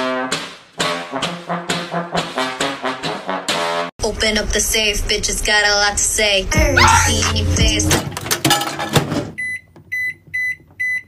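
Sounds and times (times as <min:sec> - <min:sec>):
microwave keypad beeps: 0:09.4 - 0:11.0.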